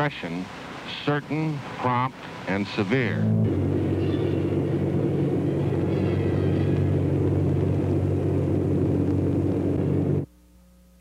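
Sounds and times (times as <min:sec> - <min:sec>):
bomber piston engines droning: 0:00.0 - 0:10.3.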